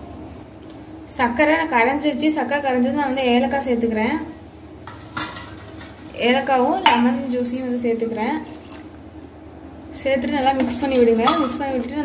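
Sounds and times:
woman speaking: 1.1 - 4.4, 6.1 - 8.5, 10.0 - 12.0
liquid bubbling: 8.1 - 9.5
utensil clinking on steel pot: 10.6 - 12.0.

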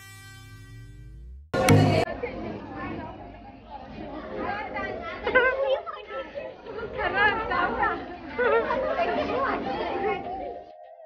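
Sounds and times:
people talking and chattering: 1.6 - 11.0.

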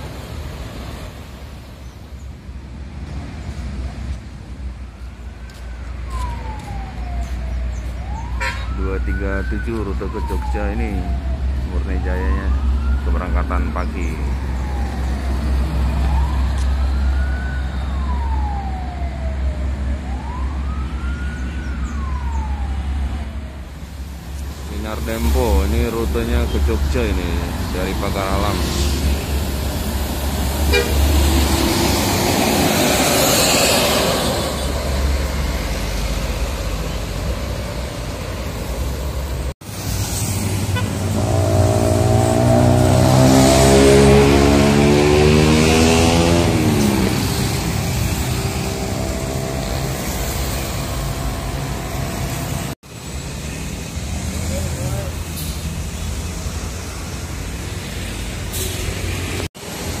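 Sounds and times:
street traffic: 0.0 - 60.0
motorbikes running: 40.3 - 55.2
coach engine passing: 40.4 - 52.8.

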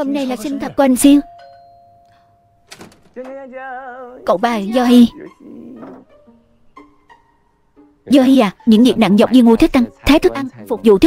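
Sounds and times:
two-note doorbell chime: 1.2 - 2.8
door handle rattle: 2.6 - 3.5.

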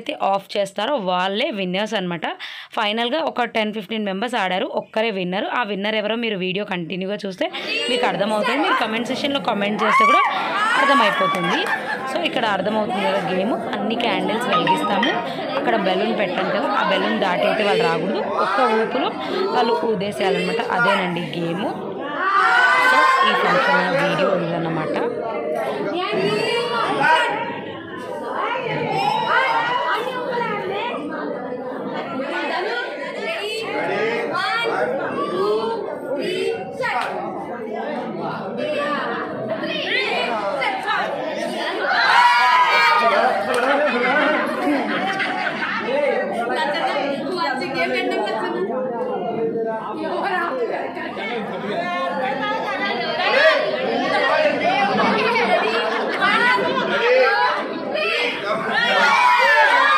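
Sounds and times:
people chattering: 0.0 - 59.9
people talking and calling out: 0.0 - 59.9.

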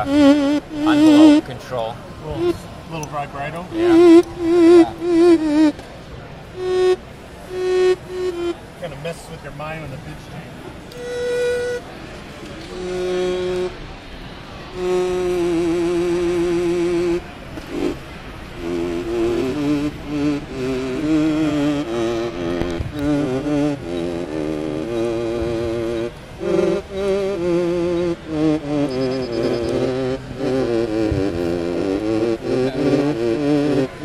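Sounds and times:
synthesizer melody with vibrato: 0.0 - 5.8, 6.6 - 8.7, 11.0 - 12.0, 12.6 - 18.0, 18.6 - 34.0.

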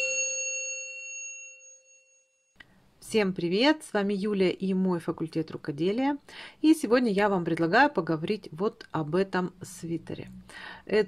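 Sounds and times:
bell-like chime ringing: 0.0 - 2.6.

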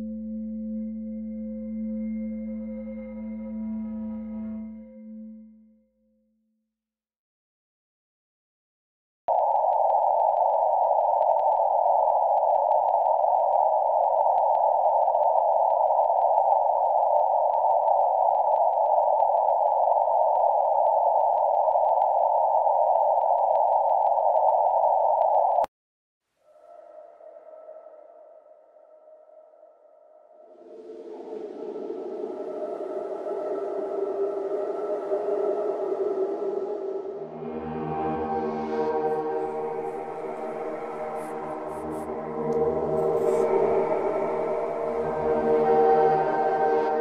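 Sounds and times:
eerie ambient music: 0.0 - 6.1, 26.4 - 47.0
faint high whine: 9.3 - 25.7, 26.5 - 47.0.

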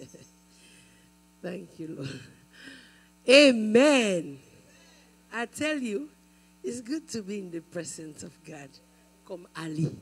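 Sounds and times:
electrical mains hum: 0.0 - 10.0
woman speaking over loudspeaker: 3.3 - 4.4, 5.4 - 6.1, 6.7 - 10.0.

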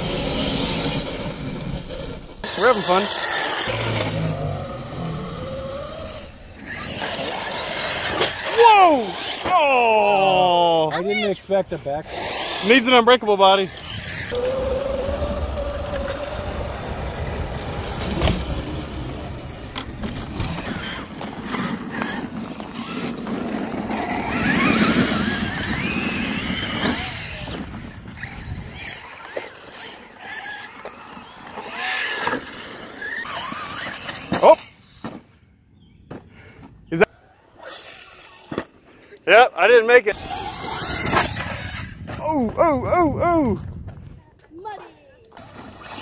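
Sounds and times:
rc car motors whining: 0.0 - 35.2, 37.0 - 42.8, 44.6 - 46.0.

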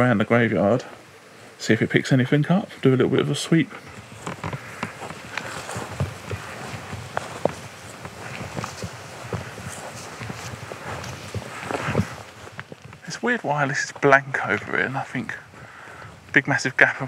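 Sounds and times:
footsteps on grass: 0.0 - 17.0
rustling: 2.8 - 17.0.

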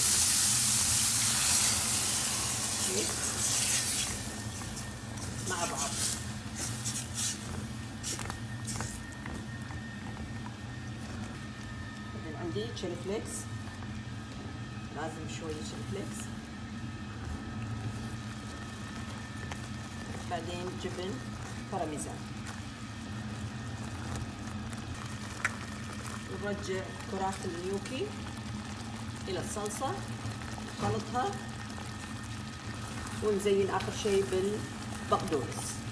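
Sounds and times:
sauce sizzling and bubbling in a pan: 0.0 - 35.9
steady low hum: 0.0 - 35.9
spatula stirring: 1.8 - 12.2.

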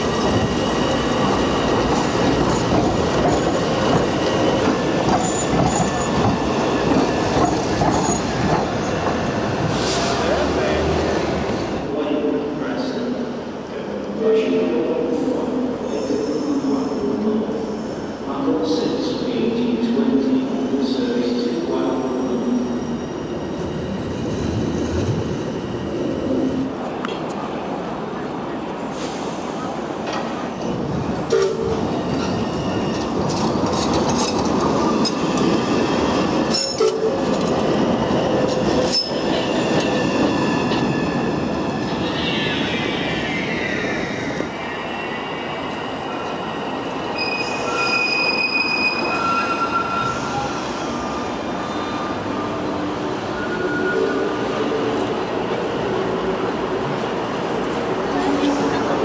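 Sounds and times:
tram wheels squealing: 0.0 - 10.4, 30.2 - 55.0.

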